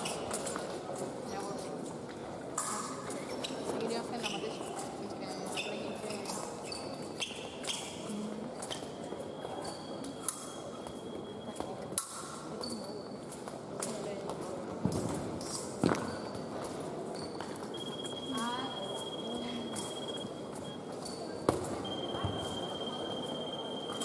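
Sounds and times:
hum of echoing hall: 0.0s - 24.0s
short electronic beeps: 17.7s - 21.0s, 21.8s - 24.0s.

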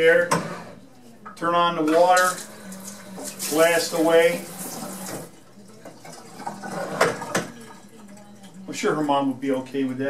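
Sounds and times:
water spraying into sink: 2.2s - 5.3s.

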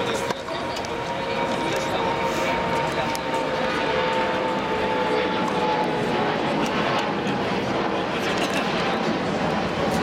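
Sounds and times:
loud outdoor background roar: 0.0s - 10.0s.

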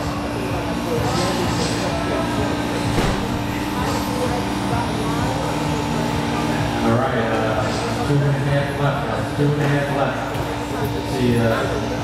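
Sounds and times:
hall chatter: 0.0s - 12.0s
steady hum: 0.0s - 12.0s.

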